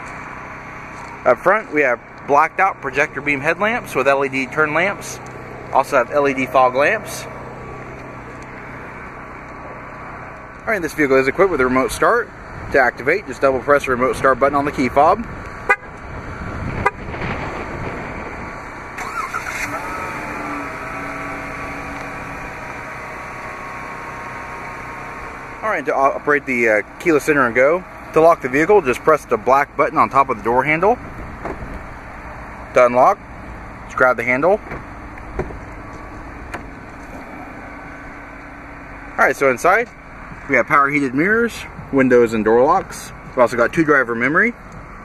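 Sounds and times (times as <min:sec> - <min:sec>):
car engine starting and idling: 0:00.0 - 0:45.0
steady low hum: 0:19.7 - 0:43.5.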